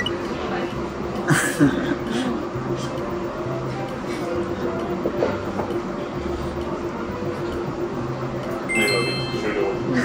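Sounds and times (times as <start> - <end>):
ringing chime tone: 8.7 - 9.9.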